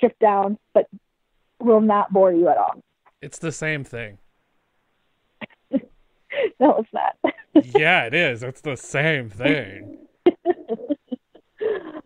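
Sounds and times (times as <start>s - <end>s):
person laughing: 7.3s - 8.4s, 9.0s - 12.0s.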